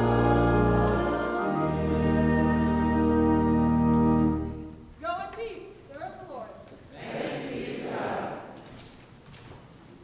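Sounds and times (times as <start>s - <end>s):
congregation speaking together: 6.1s - 8.8s.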